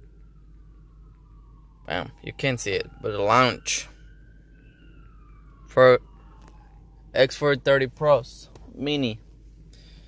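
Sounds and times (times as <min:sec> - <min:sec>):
low steady hum: 0:00.0 - 0:10.0
man speaking: 0:01.9 - 0:03.9, 0:07.2 - 0:09.2.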